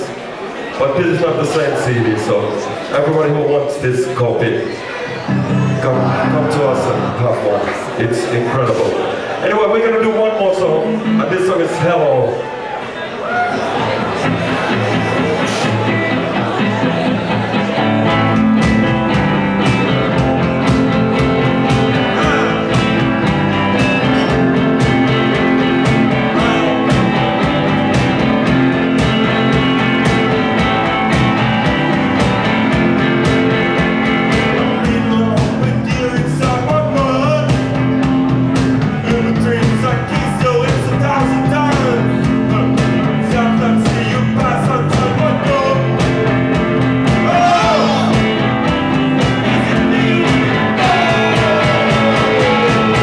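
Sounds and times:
electric guitar: 5.0s - 7.9s, 10.8s - 11.3s, 13.3s - 53.0s
driving drum beat: 14.2s - 53.0s
man singing: 22.1s - 22.9s, 26.3s - 27.2s, 34.6s - 37.7s, 39.0s - 46.1s, 47.2s - 48.3s, 49.4s - 53.0s.

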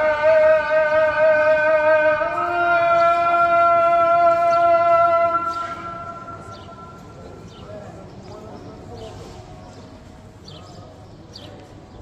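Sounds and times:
call to prayer over loudspeaker: 0.0s - 11.7s.

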